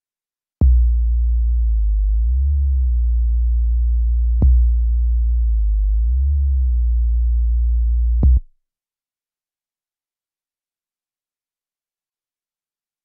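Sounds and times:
deep sub-bass note: 0.6 - 8.4.

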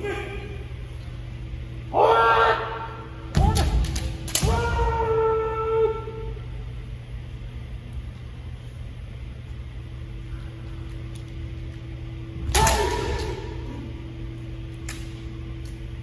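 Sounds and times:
person shouting: 0.0 - 0.6, 1.9 - 3.7, 4.4 - 6.4, 12.5 - 13.9
steady low hum: 0.0 - 16.0.

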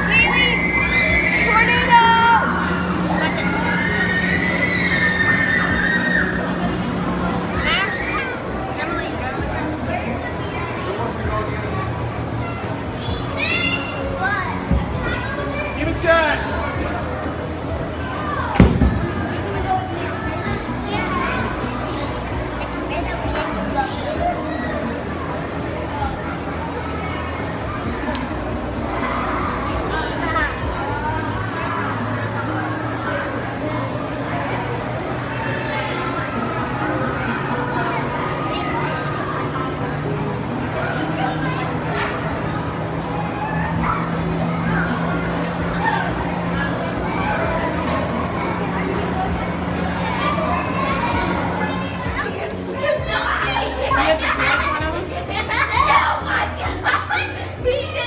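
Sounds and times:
children calling out excitedly: 0.0 - 58.0
fan blowing rushing wind: 0.0 - 58.0.

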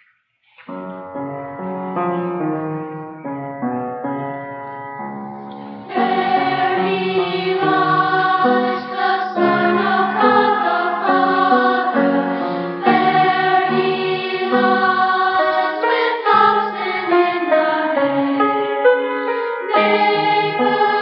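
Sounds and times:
children's choir singing: 5.5 - 21.0.

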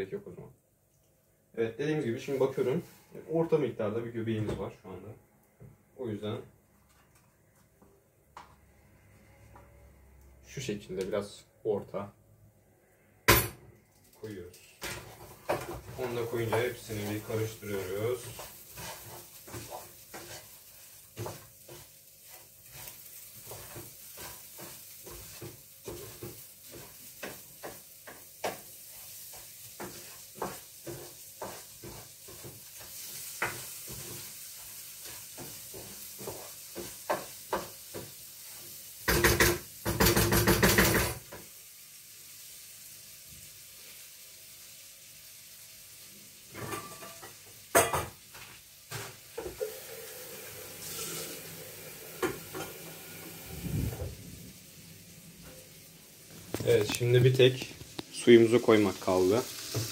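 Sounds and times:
rice frying sizzle: 1.3 - 3.7, 14.1 - 59.9
spoon scraping pan: 14.9 - 38.7, 50.7 - 54.0.

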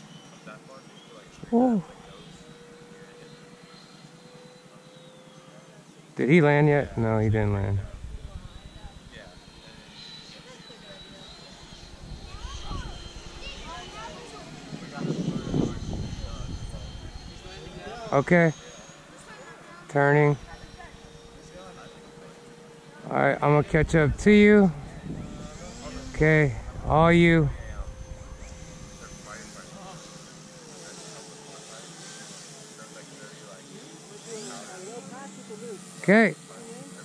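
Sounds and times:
faint voices murmuring: 0.0 - 37.0
rc jets high whine: 0.0 - 37.0.

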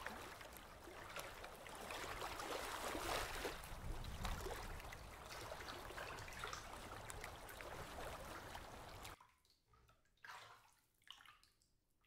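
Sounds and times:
light water wash: 0.0 - 9.3
soft water splashes: 0.0 - 12.0.

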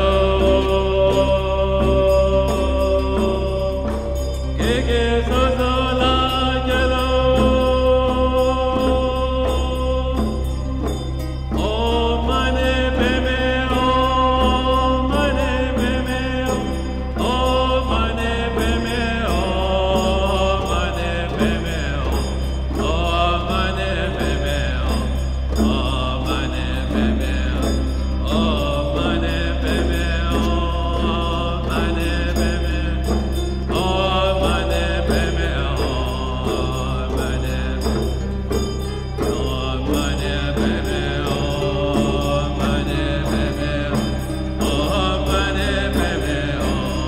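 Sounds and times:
mantra-like chanting: 0.0 - 47.0
steady low drone: 0.0 - 47.0.

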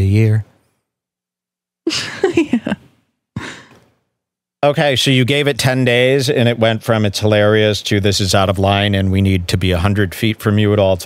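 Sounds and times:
person laughing: 1.9 - 2.8.

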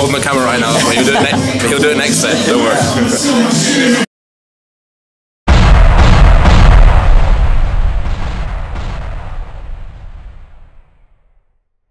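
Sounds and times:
deep cinematic boom: 5.5 - 11.5.

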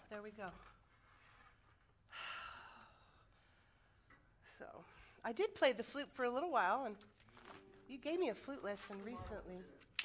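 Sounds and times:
breathy sigh: 2.1 - 3.2.

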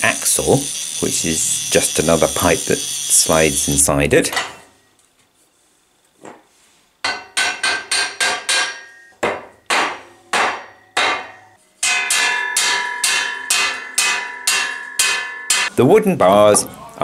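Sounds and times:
steel ringing: 0.0 - 4.6, 10.3 - 15.7.

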